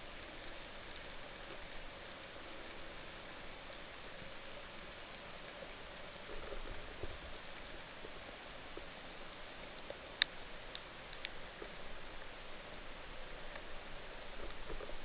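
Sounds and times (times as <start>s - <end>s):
small clicks and crackles: 0.0s - 15.0s.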